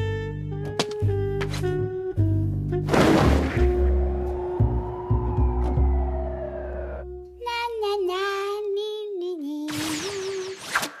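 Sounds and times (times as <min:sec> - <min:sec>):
childlike voice singing: 0:07.4 - 0:10.6.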